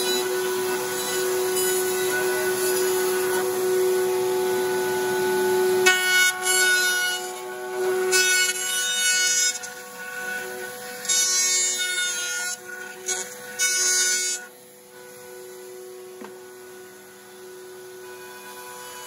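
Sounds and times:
router bit cutting wood: 0:00.0 - 0:19.0
router whining: 0:00.0 - 0:19.0.

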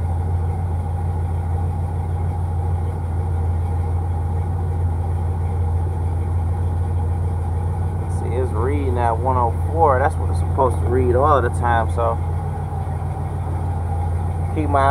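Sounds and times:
car engine idling: 0:00.0 - 0:14.9.

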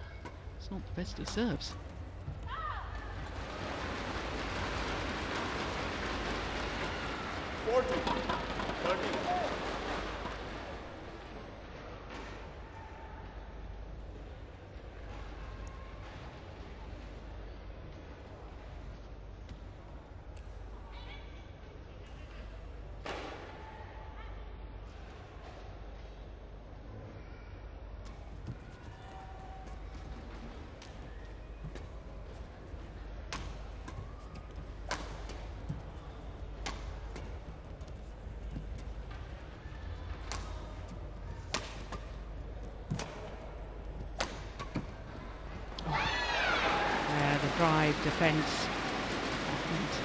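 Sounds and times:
crowd cheering: 0:02.6 - 0:10.9, 0:45.4 - 0:50.0
rackets striking shuttlecock: 0:36.6 - 0:37.3, 0:44.1 - 0:44.9
crowd murmur: 0:37.4 - 0:50.0.

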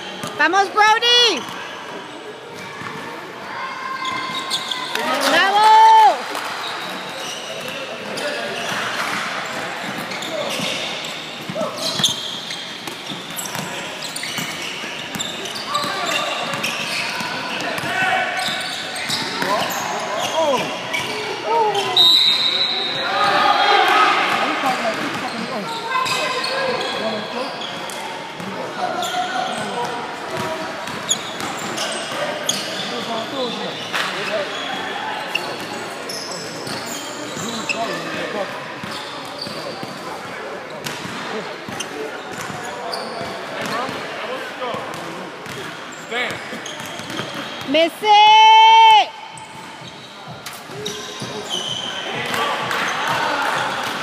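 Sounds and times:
shouts and chatter of crowd: 0:00.0 - 0:08.6, 0:15.1 - 0:39.5, 0:46.1 - 0:54.0
basketball bouncing on court: 0:46.3 - 0:47.4.

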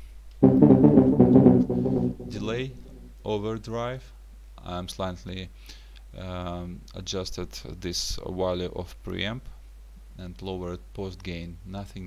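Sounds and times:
deep synth bass: 0:00.4 - 0:03.1.

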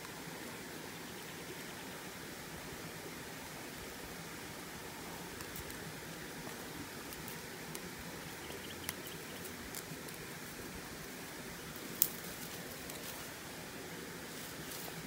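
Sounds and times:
riverside background hiss: 0:00.0 - 0:15.0.

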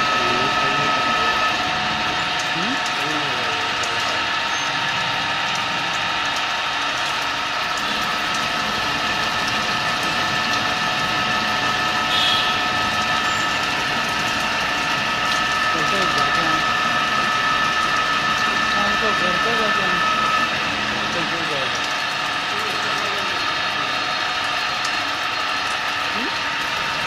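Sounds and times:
milling machine cutting metal: 0:00.0 - 0:27.0.

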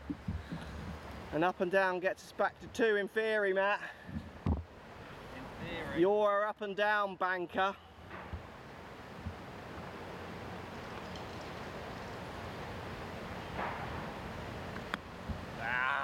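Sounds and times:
steady wind noise: 0:00.0 - 0:02.9, 0:03.9 - 0:06.2, 0:07.6 - 0:16.0.

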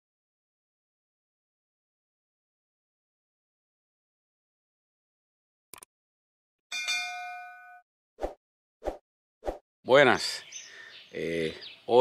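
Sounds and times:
bright bell-like ding: 0:06.7 - 0:07.8.

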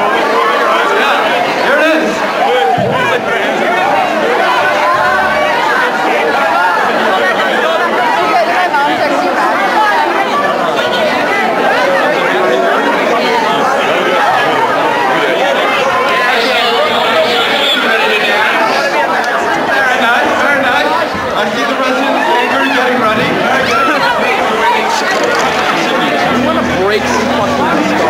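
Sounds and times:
crowd chatter: 0:00.0 - 0:28.0.

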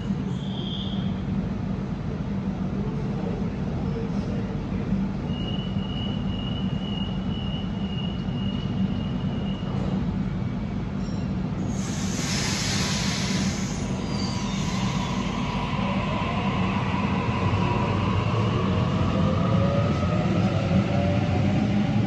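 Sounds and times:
electric train rumbling: 0:00.0 - 0:22.0.

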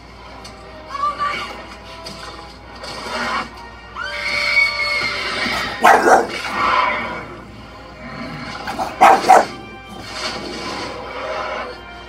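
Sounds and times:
music from tv: 0:00.0 - 0:12.0
dog barking: 0:05.7 - 0:06.4, 0:08.7 - 0:09.6.

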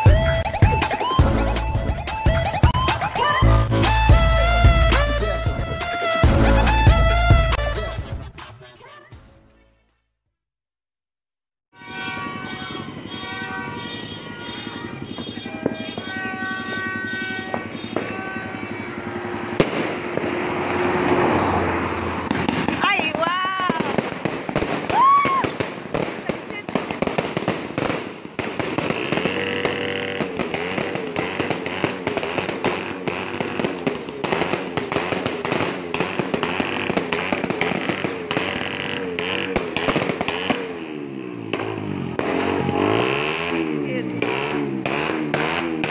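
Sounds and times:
fireworks popping and crackling: 0:00.0 - 0:03.4, 0:11.8 - 0:21.3, 0:22.2 - 0:45.9
person crying out: 0:24.9 - 0:25.5
motorcycle engine running: 0:28.9 - 0:45.9.

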